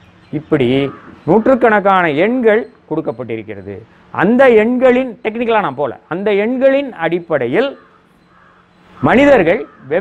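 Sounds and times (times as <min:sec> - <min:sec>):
people talking: 0:00.4 - 0:07.8, 0:09.0 - 0:10.0
crow cawing: 0:00.7 - 0:01.9, 0:07.6 - 0:10.0.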